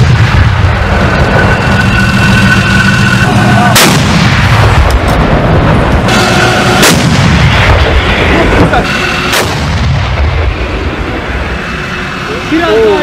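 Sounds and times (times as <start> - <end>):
continuous deep rumble: 0.0 - 13.0
sharp cracks: 3.7 - 5.2
tank gun blasts: 3.7 - 8.1, 9.2 - 10.4.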